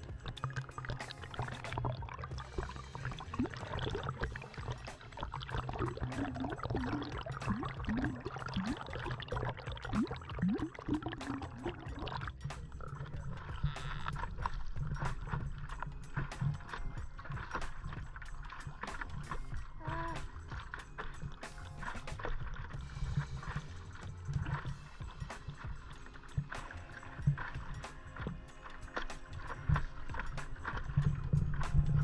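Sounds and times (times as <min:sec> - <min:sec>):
background music: 0:00.0 - 0:32.0
water lapping and splashing: 0:00.0 - 0:32.0.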